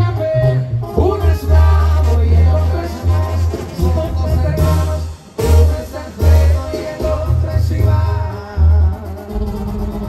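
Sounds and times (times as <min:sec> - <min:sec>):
heavy tuba bass: 0:00.0 - 0:10.0
trumpets and brass playing: 0:00.0 - 0:10.0.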